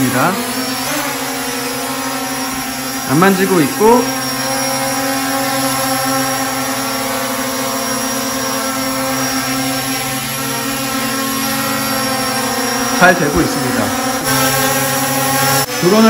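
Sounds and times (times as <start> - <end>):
quadcopter motors whining: 0.0 - 16.0.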